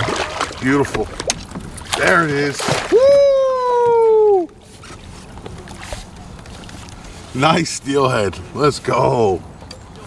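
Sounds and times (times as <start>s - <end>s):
faint water and wind: 0.0s - 10.0s
man yelling: 2.9s - 4.5s.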